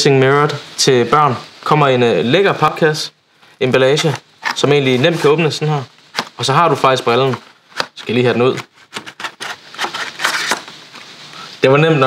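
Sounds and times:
tray scraping against cardboard: 4.1 - 5.4, 7.3 - 10.7.

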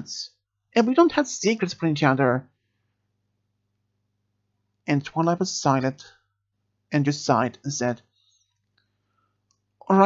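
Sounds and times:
man speaking: 0.0 - 2.5, 4.9 - 6.2, 6.9 - 8.0.

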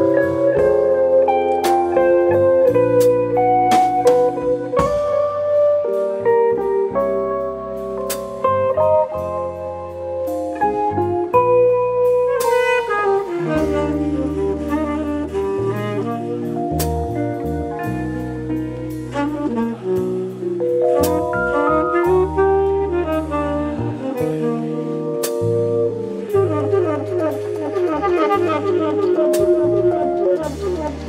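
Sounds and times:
bass guitar: 0.0 - 31.0
drum kit: 0.0 - 31.0
electric guitar: 0.0 - 31.0
electric piano: 0.0 - 31.0
saxophone: 0.0 - 31.0.

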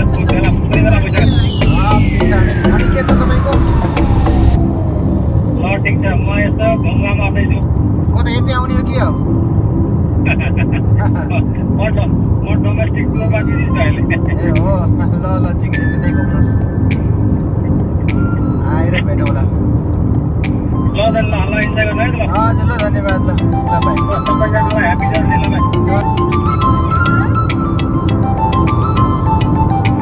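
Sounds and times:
car road and engine rumble: 0.0 - 30.0.

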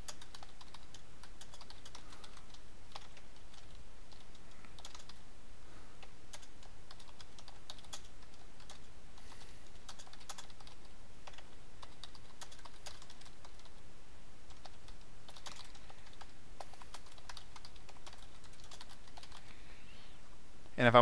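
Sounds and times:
typing on computer keyboard: 0.0 - 5.2, 6.0 - 13.8, 14.5 - 19.5
background hiss: 0.0 - 21.0.

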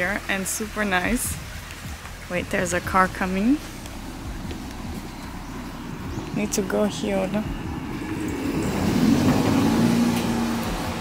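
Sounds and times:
car passing: 0.0 - 11.0.

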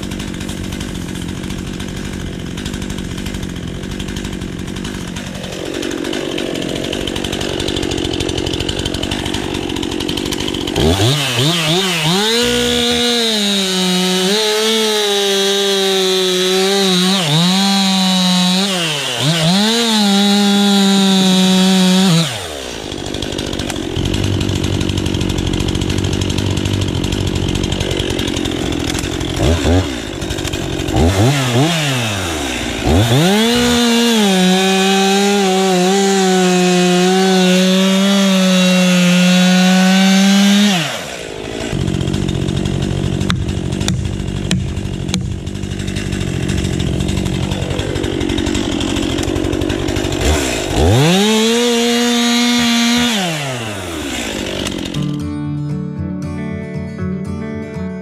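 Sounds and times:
chainsaw idling: 0.0 - 55.2
chainsaw revving: 0.0 - 55.3
chainsaw cutting log: 0.0 - 55.4.

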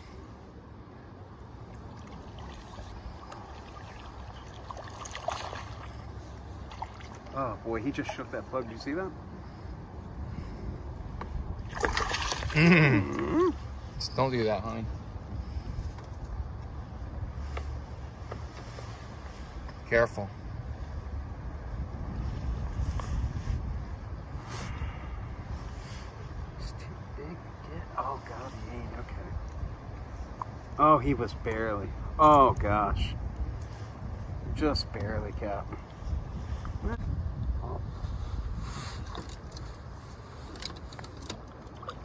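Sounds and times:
faint water splashes: 1.2 - 16.2, 34.9 - 42.0
water splashes and drips: 1.6 - 8.6, 11.6 - 12.7, 40.5 - 42.0
wind buffeting microphone: 1.8 - 42.0.

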